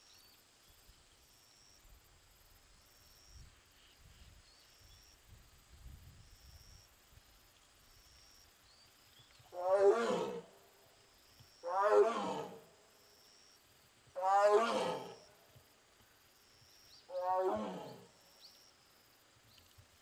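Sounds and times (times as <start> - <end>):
tiger calling: 11.6 - 12.6, 14.2 - 15.2, 17.1 - 18.1.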